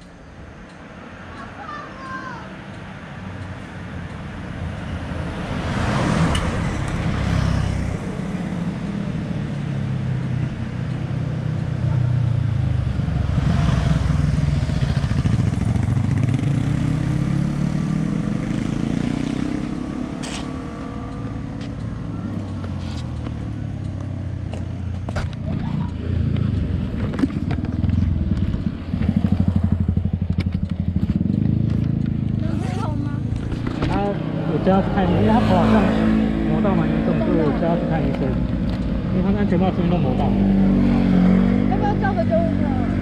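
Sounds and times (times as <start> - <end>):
motorcycle engine revving: 5.1 - 43.0.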